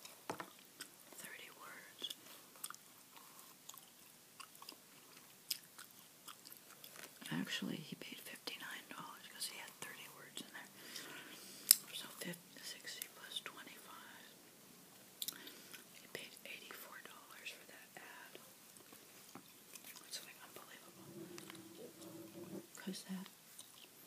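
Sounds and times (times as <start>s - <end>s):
person whispering: 1.2s - 2.1s, 7.2s - 10.8s, 11.9s - 14.4s, 16.1s - 18.4s, 19.9s - 23.3s
gum chewing smacks: 2.1s - 7.3s, 15.2s - 16.1s.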